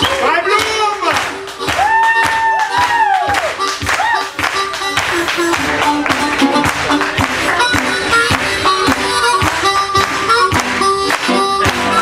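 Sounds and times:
acoustic blues band playing: 0.0 - 12.0
rhythmic hand clapping: 0.0 - 12.0.

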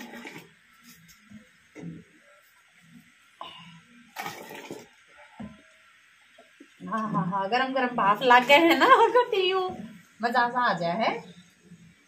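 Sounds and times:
water sloshing in a pot: 0.0 - 3.2, 3.9 - 7.3, 8.0 - 10.2.

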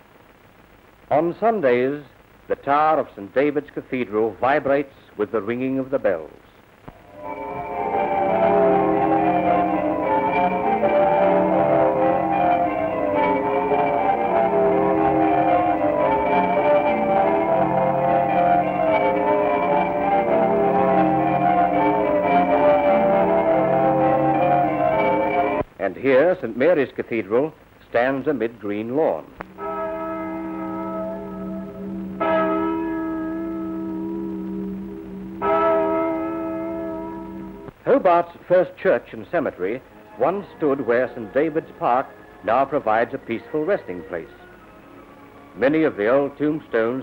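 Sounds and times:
church bells ringing a peal: 7.1 - 25.6, 28.9 - 37.7, 39.7 - 44.3.

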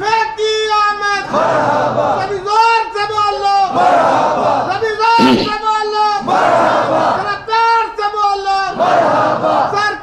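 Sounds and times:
crowd shouting together: 1.2 - 2.2, 3.7 - 5.6, 6.2 - 7.3, 8.7 - 9.9.

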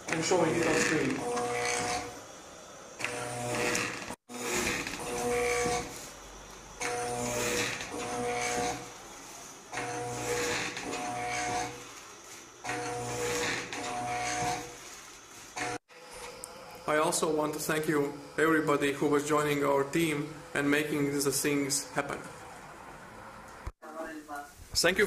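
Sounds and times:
electric motor whine: 0.0 - 2.3, 3.0 - 6.1, 6.8 - 12.0, 12.6 - 20.8.

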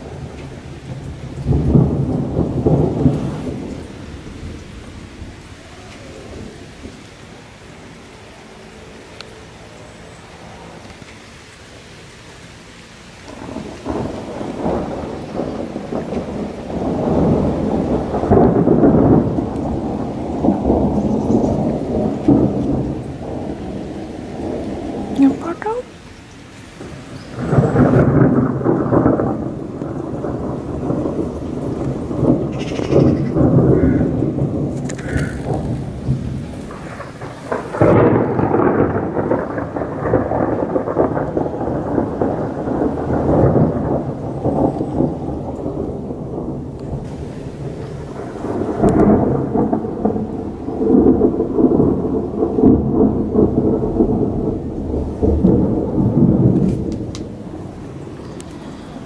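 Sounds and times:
thunder rolling: 0.0 - 9.5, 13.2 - 59.0
rain falling: 0.0 - 59.0.

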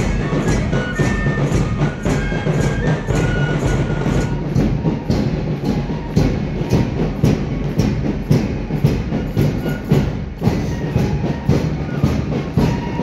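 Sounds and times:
marching drums: 0.0 - 13.0.

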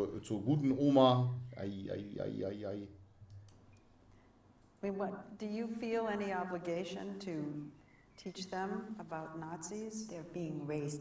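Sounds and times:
woman speaking: 4.8 - 11.0.

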